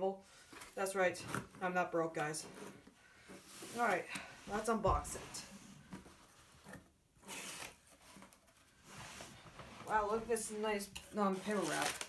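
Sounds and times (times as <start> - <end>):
soft rustling handling noise: 0.3 - 7.0, 7.6 - 12.0.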